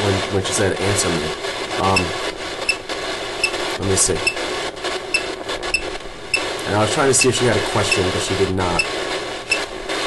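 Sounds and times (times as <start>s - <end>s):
static hiss and crackle: 0.0s - 10.0s.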